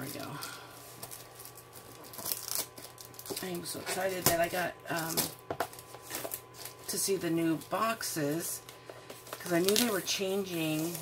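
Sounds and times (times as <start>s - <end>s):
cellophane crinkling and tearing: 0.0s - 11.0s.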